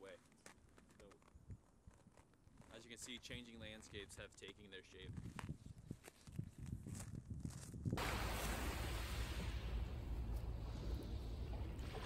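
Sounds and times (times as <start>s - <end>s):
wind rumbling on microphone: 5.0s - 12.0s
waves washing on shore: 8.0s - 10.8s.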